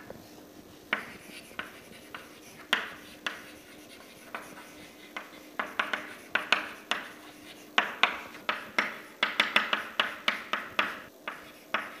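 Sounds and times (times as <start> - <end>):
chalk tapping and scratching on chalkboard: 0.0 - 12.0.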